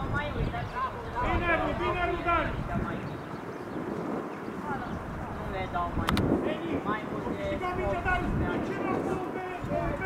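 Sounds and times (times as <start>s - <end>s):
outdoor background noise: 0.0s - 10.0s
footballers shouting: 1.1s - 3.0s, 6.8s - 10.0s.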